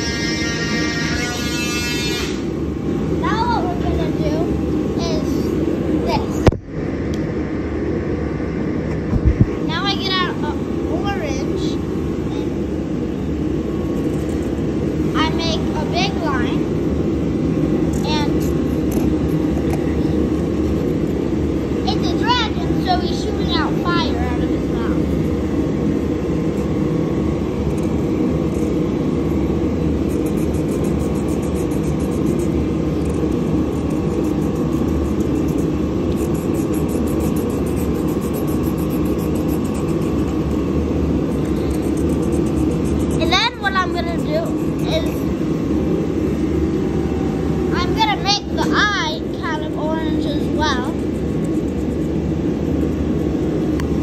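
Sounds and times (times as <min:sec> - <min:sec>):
high-pitched voices: 0:43.2 - 0:45.2.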